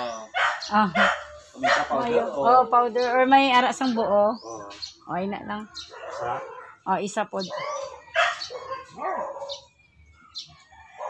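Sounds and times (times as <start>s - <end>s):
dog barking: 0.3s - 2.1s, 5.8s - 9.7s.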